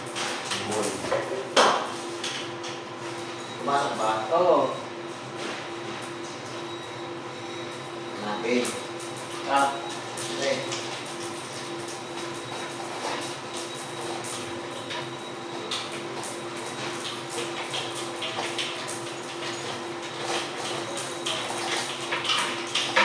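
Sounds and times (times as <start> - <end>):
steady background hum: 0.0 - 23.0.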